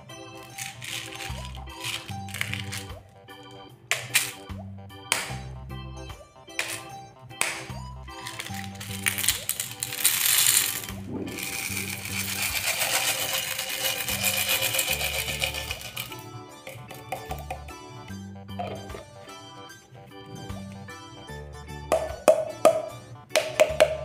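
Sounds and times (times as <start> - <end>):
jelly beans clattering: 0.0 - 4.5, 6.4 - 17.8
background music: 0.0 - 24.0.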